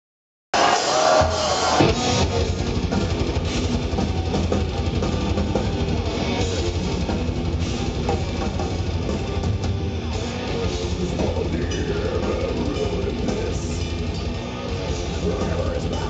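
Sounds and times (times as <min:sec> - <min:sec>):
distorted electric guitars: 0:00.6 - 0:16.0
bass guitar: 0:01.2 - 0:16.0
fast dense drumming: 0:01.3 - 0:16.0.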